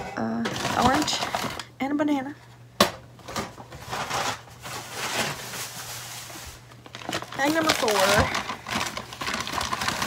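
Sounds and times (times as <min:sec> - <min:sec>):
bag crinkling and rustling: 0:03.5 - 0:10.0.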